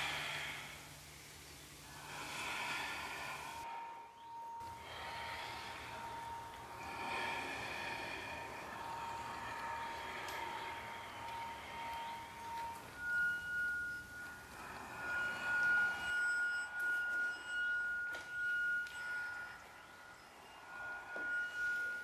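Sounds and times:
high pure ringing tone: 0:00.0 - 0:22.0
lower held tone: 0:00.0 - 0:22.0.

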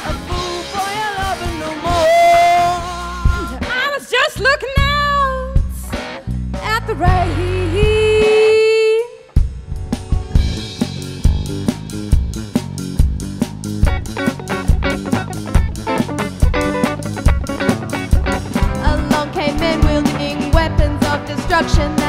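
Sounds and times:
person singing: 0:00.0 - 0:04.1, 0:18.8 - 0:22.0
rock drums and guitar: 0:00.0 - 0:22.0.

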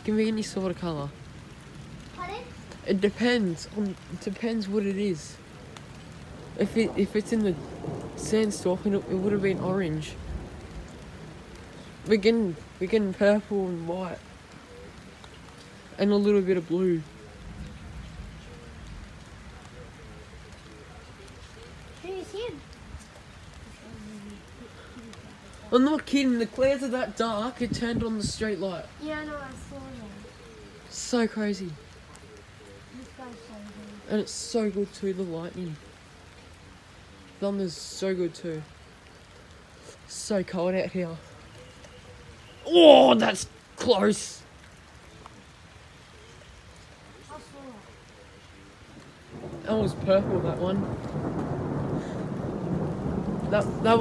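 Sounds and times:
steady rain: 0:00.0 - 0:54.0
faint voices: 0:11.0 - 0:28.1, 0:28.8 - 0:40.4, 0:41.0 - 0:52.4.

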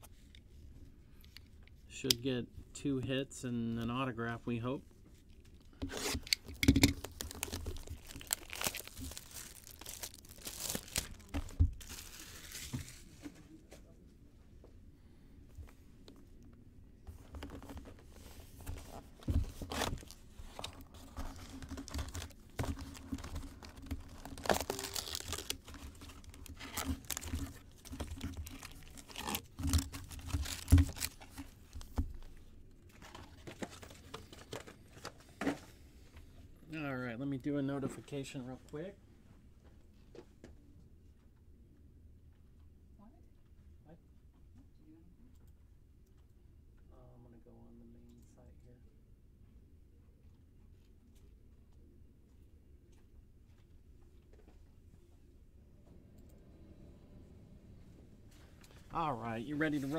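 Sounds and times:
foil packs rustling: 0:05.8 - 0:13.2, 0:18.7 - 0:32.0
plastic shrink wrap tearing: 0:05.9 - 0:13.0, 0:20.9 - 0:31.9.

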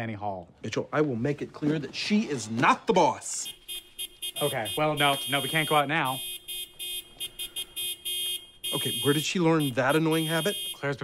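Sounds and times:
car horn short quick honks: 0:03.5 - 0:10.9.

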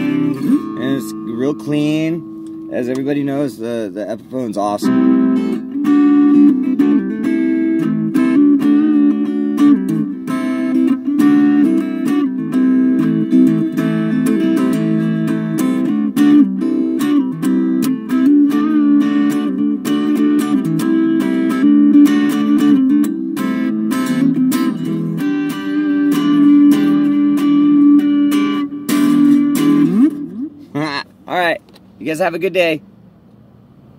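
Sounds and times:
electric guitar playing: 0:00.0 - 0:31.2.

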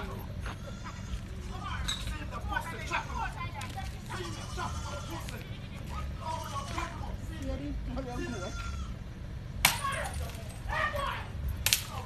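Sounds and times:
goat bleating: 0:00.0 - 0:01.8, 0:02.4 - 0:07.4, 0:08.0 - 0:09.1
people's voices: 0:00.0 - 0:08.8.

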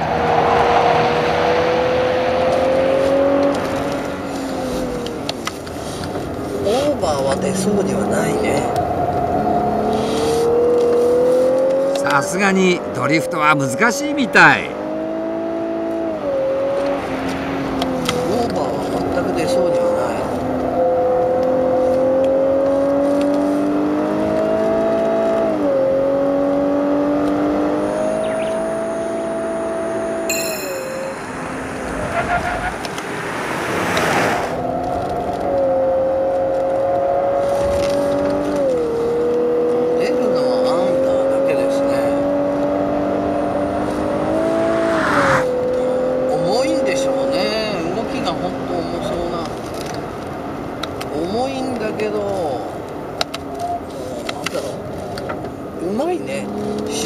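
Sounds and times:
car engine revving with gear changes: 0:00.0 - 0:57.0
short rush of noise: 0:31.0 - 0:34.6.

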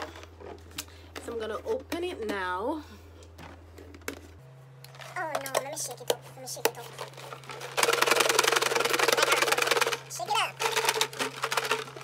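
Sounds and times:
paper slips rattling in jar: 0:06.6 - 0:12.0.

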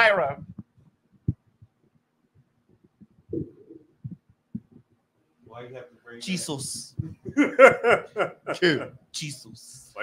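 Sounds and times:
microphone handling thumps and rustles: 0:00.2 - 0:05.0, 0:06.7 - 0:07.5.

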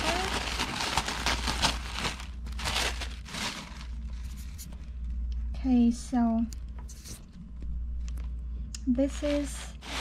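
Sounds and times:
tissue paper crinkling: 0:00.0 - 0:04.8, 0:09.3 - 0:10.0.

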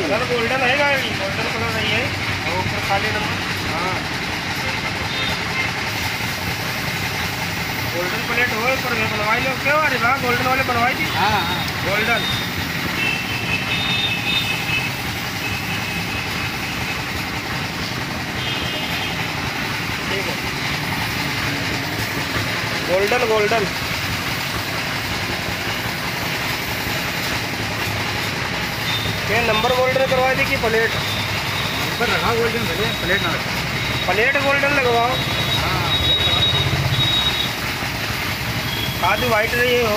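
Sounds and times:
air compressor rumble: 0:00.0 - 0:39.9
machine running with hiss and hum: 0:00.0 - 0:39.9.

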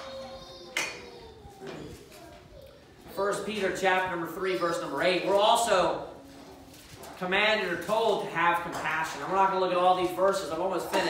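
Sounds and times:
paper rustling: 0:05.0 - 0:11.0.

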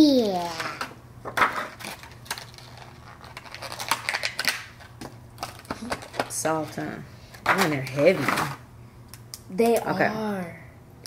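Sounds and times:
plastic packaging crinkling: 0:01.3 - 0:06.7.

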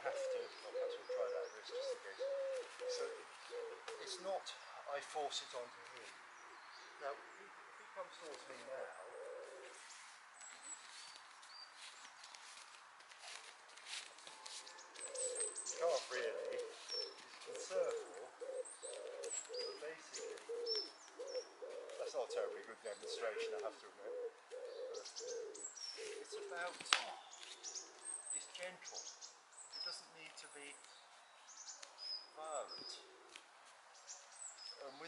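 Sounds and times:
pigeon cooing: 0:00.0 - 0:04.4, 0:08.5 - 0:09.8, 0:14.3 - 0:28.1
small birds chirping: 0:00.0 - 0:35.0.

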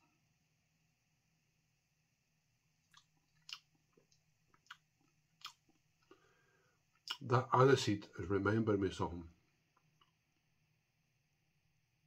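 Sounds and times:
lip smacks and tongue clicks: 0:02.8 - 0:06.2, 0:07.0 - 0:07.3.

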